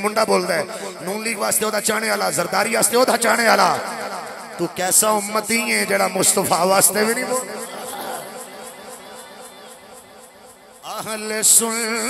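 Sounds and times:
man chanting over loudspeaker: 0.0 - 12.0
faint murmur of voices: 7.6 - 9.8.

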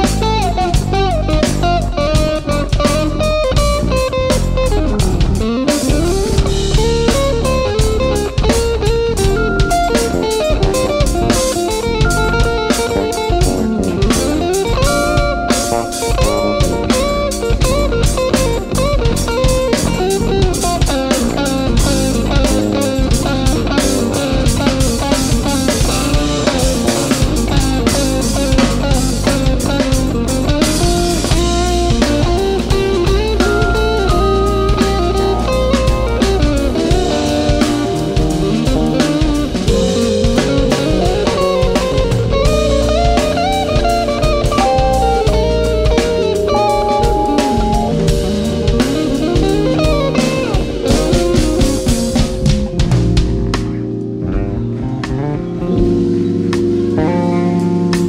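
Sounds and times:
bass guitar: 0.0 - 58.0
drum kit: 0.0 - 58.0
electric guitar lead lines: 0.0 - 58.0.

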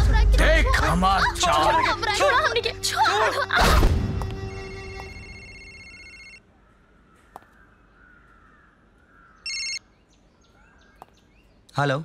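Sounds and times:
phone ringtone burst: 5.1 - 6.4, 9.5 - 9.8.

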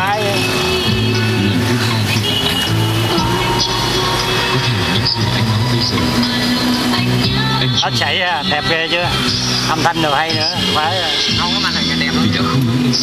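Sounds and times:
music through car speakers: 0.0 - 13.0
sustained bass notes: 0.0 - 13.0.

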